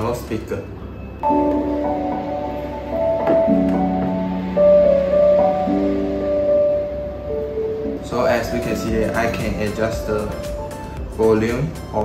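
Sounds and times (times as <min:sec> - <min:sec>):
instrumental music through speaker: 0:01.2 - 0:12.0.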